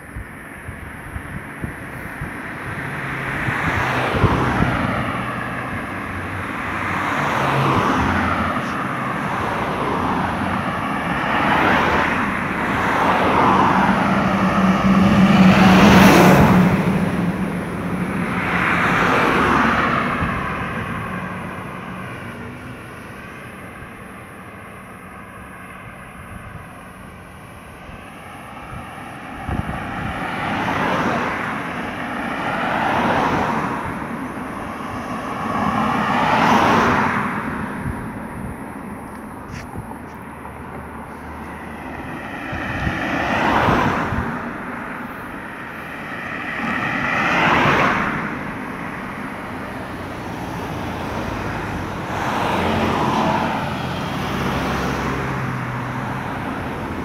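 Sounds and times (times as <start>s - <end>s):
cars passing on paved road: 0.0s - 57.0s.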